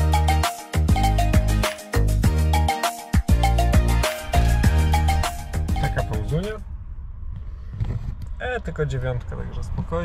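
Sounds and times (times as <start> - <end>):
man speaking: 5.7 - 6.6.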